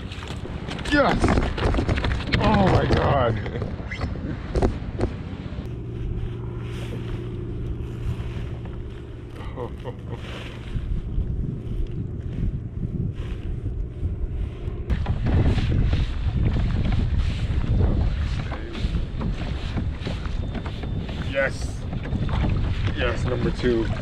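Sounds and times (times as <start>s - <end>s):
steady low hum: 0.0s - 24.0s
wind buffeting microphone: 0.0s - 24.0s.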